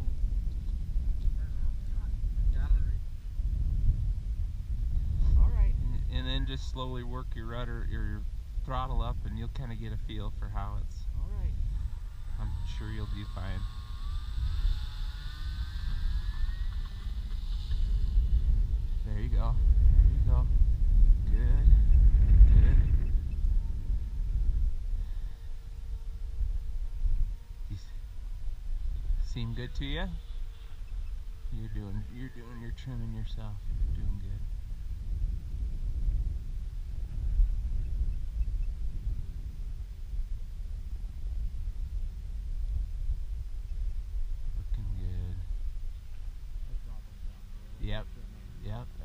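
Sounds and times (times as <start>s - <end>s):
wind buffeting microphone: 0.0s - 49.0s
faint voices: 8.9s - 17.6s.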